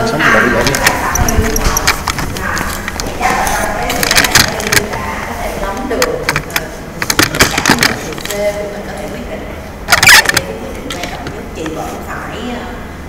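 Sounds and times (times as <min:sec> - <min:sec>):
people talking: 0:00.0 - 0:12.9.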